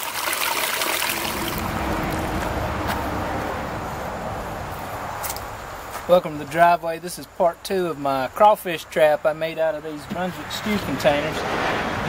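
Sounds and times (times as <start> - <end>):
creek water running over rocks: 0.0 - 3.1.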